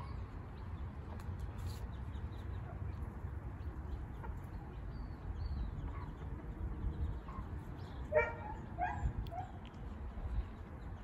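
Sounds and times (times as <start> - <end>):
chicks peeping: 0.0 - 8.8.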